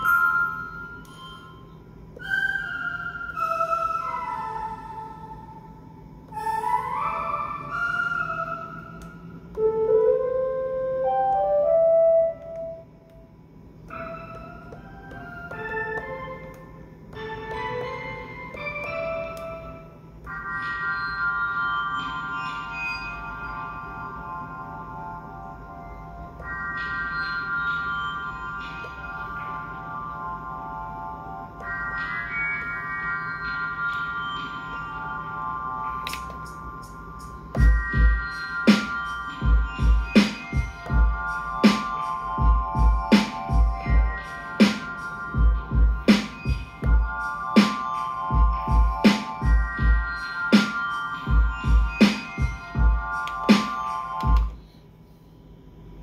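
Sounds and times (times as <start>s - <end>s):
held keyboard-like chords: 0.0s - 54.7s
synth melodic phrases: 6.3s - 13.3s, 13.9s - 54.6s.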